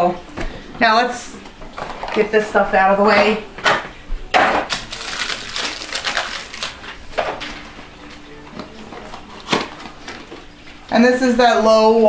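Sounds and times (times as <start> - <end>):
packaging rustling and clattering: 1.7 - 2.2, 4.7 - 10.9.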